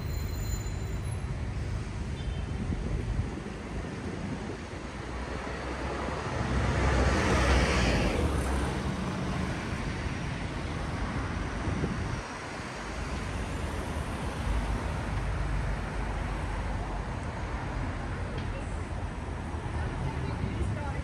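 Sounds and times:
motor vehicles rumbling: 0:00.0 - 0:21.0.

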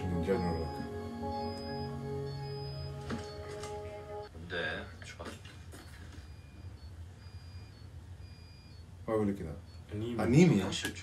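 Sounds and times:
electronic beeping: 0:00.0 - 0:04.3, 0:05.7 - 0:10.8
low steady hum: 0:00.0 - 0:10.6.

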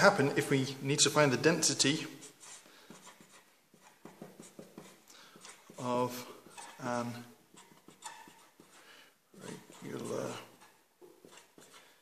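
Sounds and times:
marker pen scratching on paper: 0:02.2 - 0:12.0.

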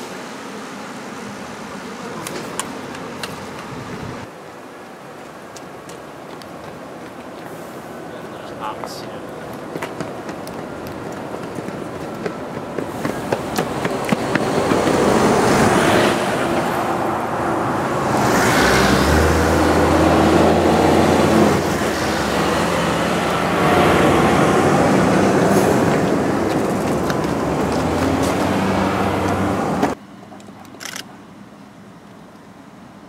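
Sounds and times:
tyres on road: 0:00.0 - 0:33.0
truck diesel engine rumbling: 0:10.1 - 0:31.3.

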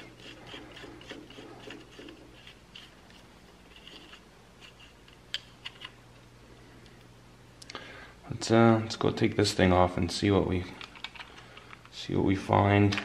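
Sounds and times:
screwdriver scraping on terminals: 0:00.0 - 0:06.0.

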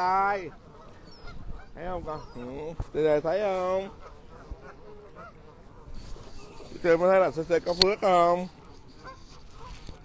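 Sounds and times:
geese honking: 0:00.0 - 0:10.0.

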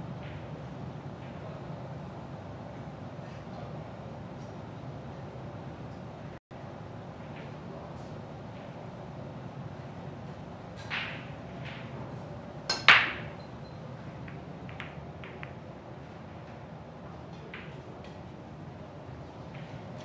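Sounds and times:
cue striking cue ball: 0:12.7 - 0:13.4, 0:14.3 - 0:15.6
billiard balls clicking: 0:14.2 - 0:15.6.

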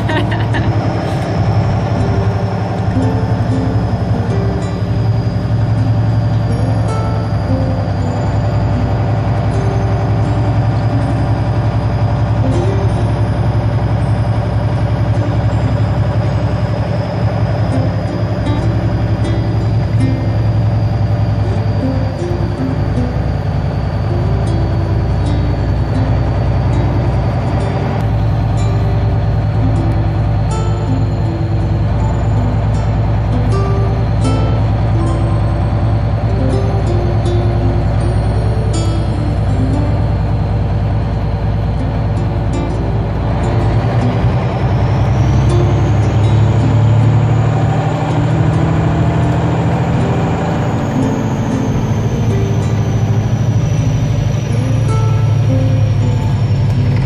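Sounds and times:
truck diesel engine running: 0:00.0 - 0:57.0.

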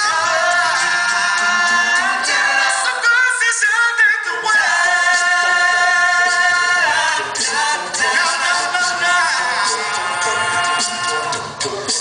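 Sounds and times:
male a cappella group singing: 0:00.0 - 0:12.0.

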